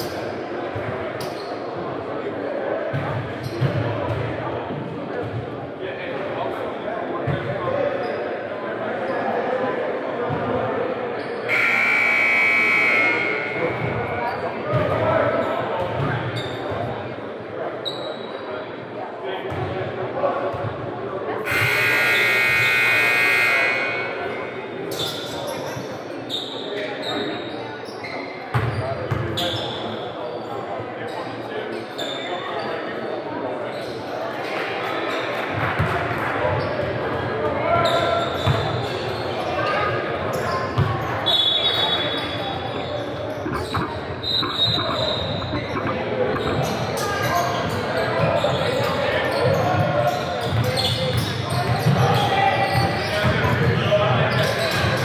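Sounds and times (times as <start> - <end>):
voices: 8.8 - 16.6, 21.4 - 25.5, 37.1 - 55.0
scoreboard buzzer: 11.5 - 14.0, 21.5 - 24.5, 43.4 - 46.7
short high squeaks: 41.4 - 47.6.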